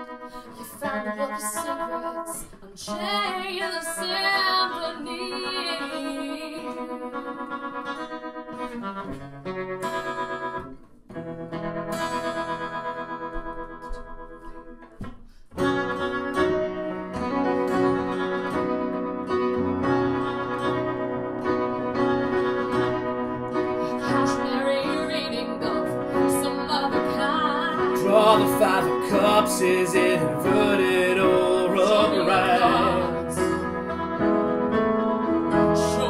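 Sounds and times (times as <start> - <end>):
strummed acoustic guitar: 0.0 - 36.0
upright piano playing: 15.6 - 36.0.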